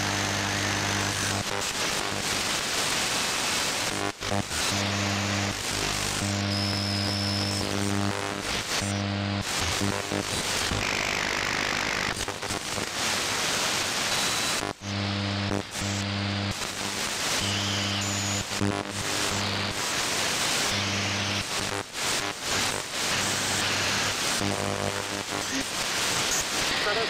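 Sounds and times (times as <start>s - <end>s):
low radio buzz: 0.0s - 27.0s
radio hiss and static: 0.0s - 27.0s.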